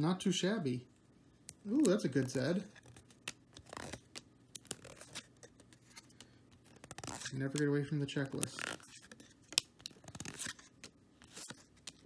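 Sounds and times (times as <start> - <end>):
trading cards clicking and scraping: 1.4 - 12.0.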